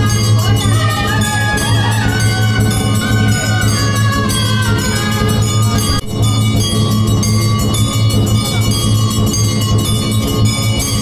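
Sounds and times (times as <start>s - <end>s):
steady low beat: 0.0s - 11.0s
temple bells ringing rapidly: 0.0s - 11.0s.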